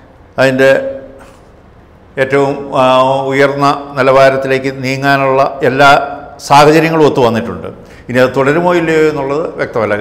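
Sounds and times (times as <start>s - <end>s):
man speaking: 0.4s - 1.2s, 2.2s - 10.0s.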